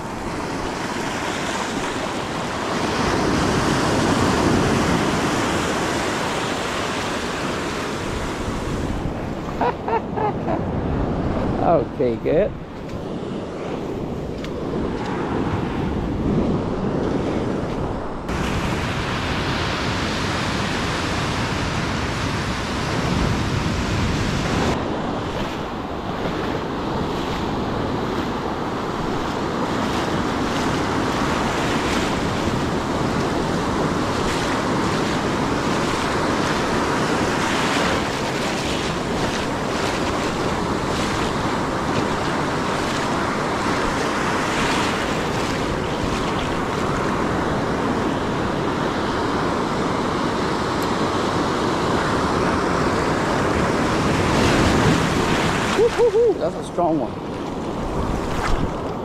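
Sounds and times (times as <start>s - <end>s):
ocean surf breaking: 0.0s - 59.0s
wind rumbling on microphone: 0.0s - 59.0s.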